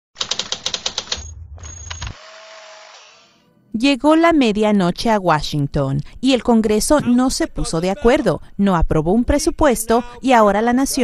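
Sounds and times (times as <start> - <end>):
typewriter-like clicks: 0.2 - 1.3
low hum: 1.2 - 3.8.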